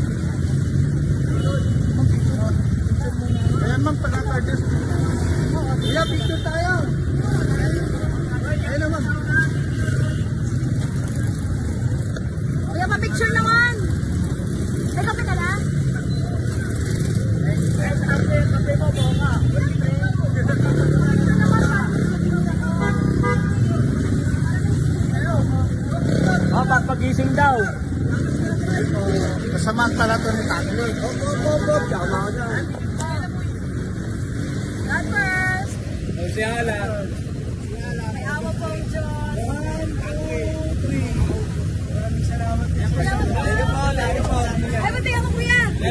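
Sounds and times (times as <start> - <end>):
low rumble of street traffic: 0.0 - 45.9
people talking and calling out: 0.0 - 45.9
people talking: 36.5 - 45.9.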